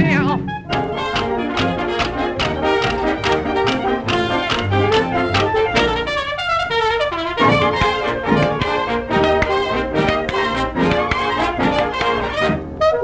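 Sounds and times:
jazz band with trumpets and trombone: 0.0s - 13.0s.

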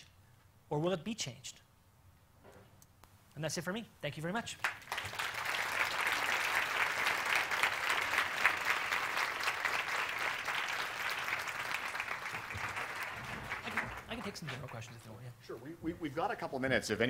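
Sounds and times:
audience applauding: 4.6s - 15.2s.

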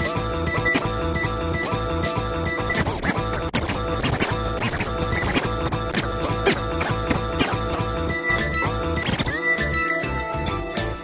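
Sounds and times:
dj music with steady beat: 0.0s - 11.0s.

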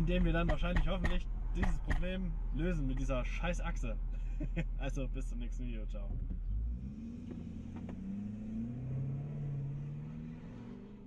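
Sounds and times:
pickup engine pulling away: 6.3s - 11.0s.

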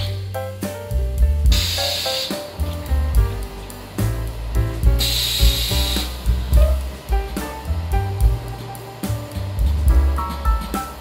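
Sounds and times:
background music with steady beat: 0.0s - 11.0s
press hiss: 1.4s - 11.0s.

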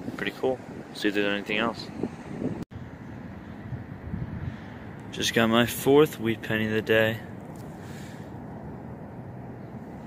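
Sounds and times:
wind buffeting microphone: 0.0s - 5.4s.

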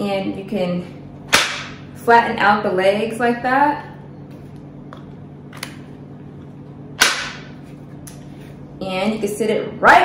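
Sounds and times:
sharp plastic snap: 1.3s - 1.8s, 7.0s - 7.5s.

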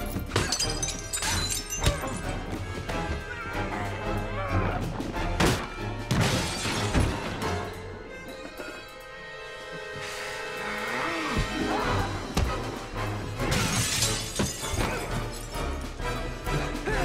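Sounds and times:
dramatic orchestral music: 0.0s - 17.0s
glass breaking: 0.2s - 2.4s, 13.5s - 15.4s.

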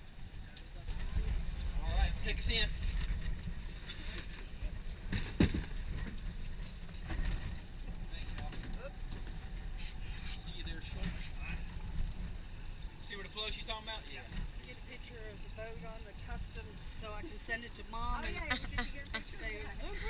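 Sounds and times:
boat motors idling: 0.0s - 20.0s
wind: 0.0s - 20.0s.

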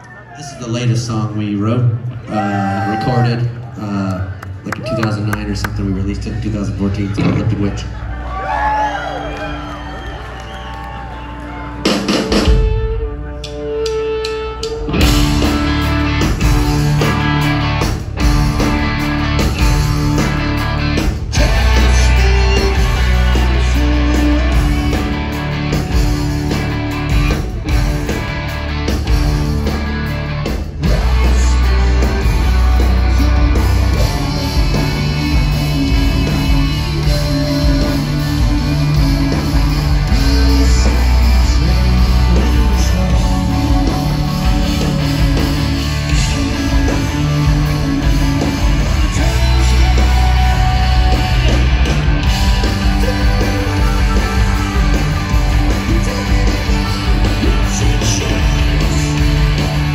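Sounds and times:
drums: 0.0s - 59.9s
bass guitar: 4.8s - 59.9s
live rock band playing: 5.6s - 59.9s
electric guitar chords: 10.9s - 59.9s.

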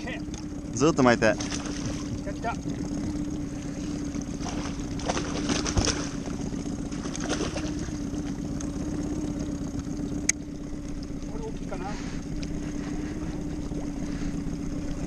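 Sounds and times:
steady low hum: 0.0s - 15.0s
fish splashing at the surface: 1.4s - 8.4s.

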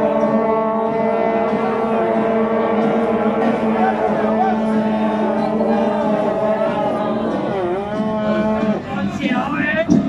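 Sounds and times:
crowd chatter: 0.0s - 10.0s
men shouting together: 3.4s - 7.2s.

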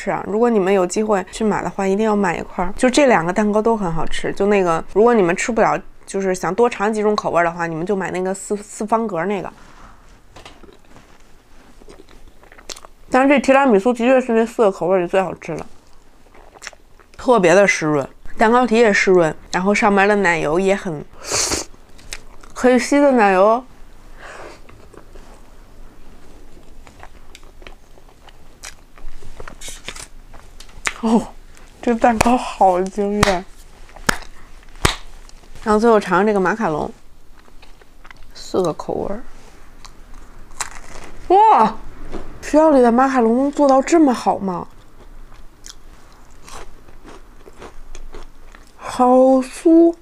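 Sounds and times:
soft breathy noise: 9.5s - 10.3s, 24.0s - 25.6s
wet chewing: 11.7s - 13.0s, 15.8s - 17.2s, 21.9s - 22.6s, 26.5s - 31.0s, 37.4s - 38.4s, 44.7s - 48.8s
crisp biscuit crunching: 39.8s - 41.2s, 44.7s - 48.8s.

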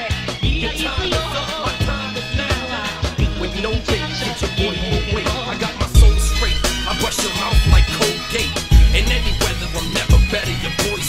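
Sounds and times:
rapping over a beat: 0.0s - 11.0s
deep bass hits: 5.9s - 11.0s.

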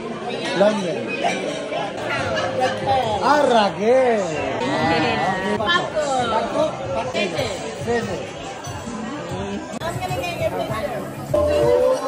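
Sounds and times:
indistinct chatter of voices: 0.0s - 12.0s.

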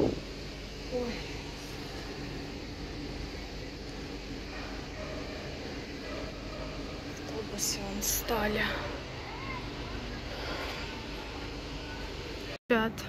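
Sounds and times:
street background noise: 0.0s - 13.0s
faint distant voices: 4.4s - 12.6s.

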